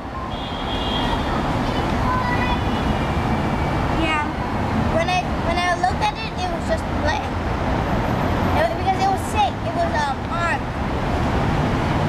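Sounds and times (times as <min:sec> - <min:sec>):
children chattering: 0:01.0 - 0:07.4.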